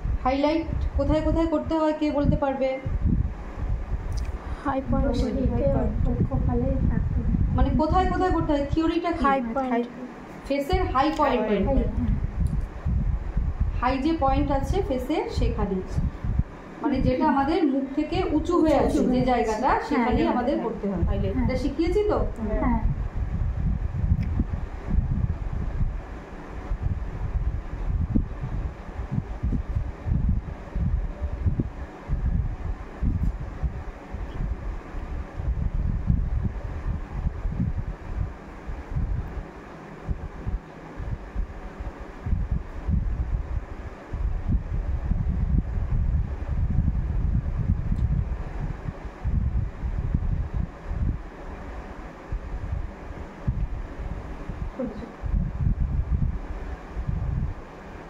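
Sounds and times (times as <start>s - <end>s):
wind buffeting microphone: 0.0s - 9.4s, 10.6s - 58.0s.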